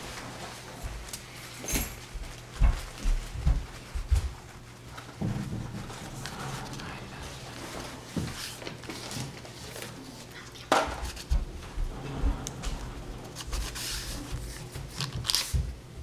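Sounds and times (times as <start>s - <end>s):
low steady hum: 0.0s - 16.0s
sudden knock: 5.2s - 6.6s.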